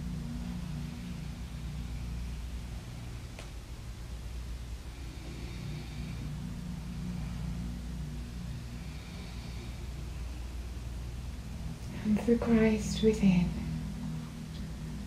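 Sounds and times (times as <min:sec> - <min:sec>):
low background rumble and hum: 0:00.0 - 0:15.0.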